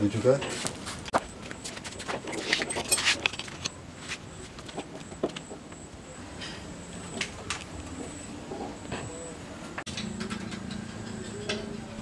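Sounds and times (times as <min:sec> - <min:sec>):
scattered metal clicks: 0:09.8 - 0:12.0.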